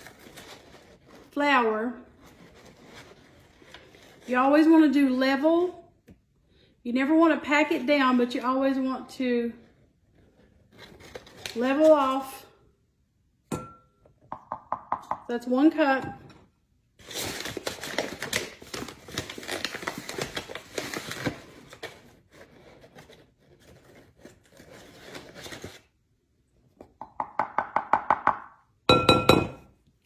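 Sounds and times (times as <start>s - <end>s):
paper crinkling: 17.0s - 26.0s.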